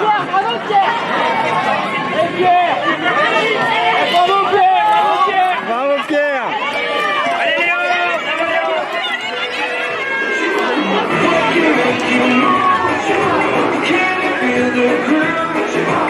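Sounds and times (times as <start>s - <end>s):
crowd cheering and shouting: 0.0s - 16.0s
background music: 10.3s - 16.0s.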